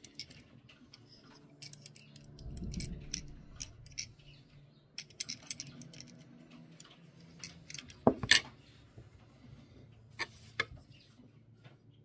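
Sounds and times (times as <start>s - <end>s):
small parts clicking: 0.0s - 4.4s, 5.0s - 8.5s
soft rubbing rumble: 2.3s - 4.6s.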